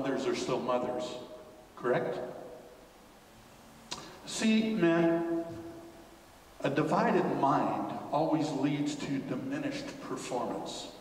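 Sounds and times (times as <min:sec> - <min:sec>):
man speaking: 0:00.0 - 0:02.6, 0:03.9 - 0:05.6, 0:06.6 - 0:11.0
room reverberation: 0:00.0 - 0:11.0.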